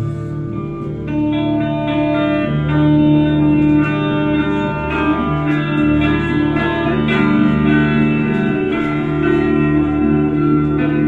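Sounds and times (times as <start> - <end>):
electric guitar ringing chords: 0.0 - 11.0.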